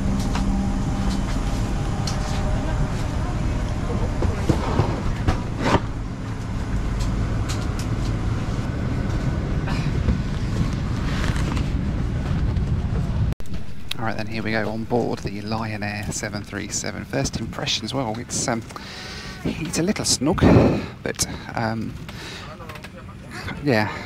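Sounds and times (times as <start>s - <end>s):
aircraft cabin air hum: 0.0s - 24.0s.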